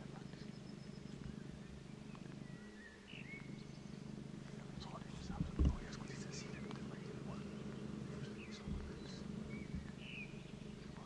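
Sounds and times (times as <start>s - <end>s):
small bird calls: 0.0s - 11.0s
steady low hum: 0.0s - 11.0s.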